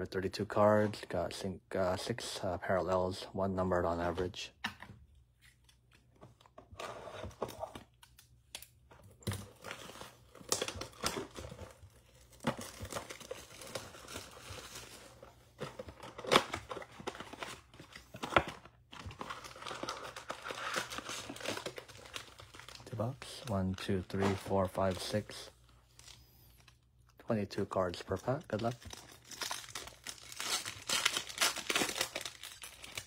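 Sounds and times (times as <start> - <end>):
plastic wrap crinkling: 28.1 - 33.0
plastic wrap tearing: 28.6 - 33.0.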